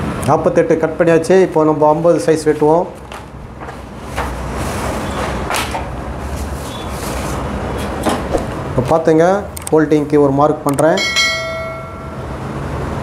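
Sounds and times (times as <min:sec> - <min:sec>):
paper rustling and sliding: 0:02.5 - 0:07.9
paper scraping: 0:06.2 - 0:07.5.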